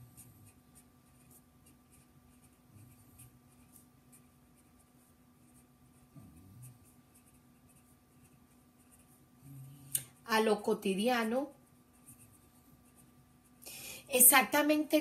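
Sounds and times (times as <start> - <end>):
pen scratching handwriting: 0.2 - 9.2.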